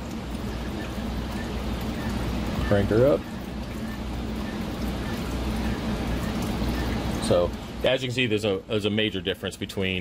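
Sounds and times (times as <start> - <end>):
low pump hum: 0.0 - 10.0
running water rush: 0.0 - 10.0.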